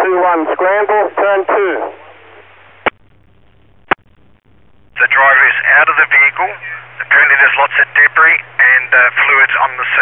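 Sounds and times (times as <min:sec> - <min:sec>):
radio scanner hiss: 0:00.0 - 0:10.0.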